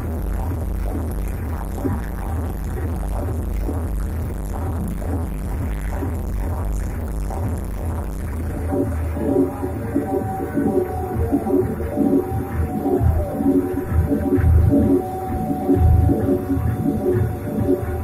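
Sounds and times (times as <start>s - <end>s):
live electronic music: 0.3s - 18.0s.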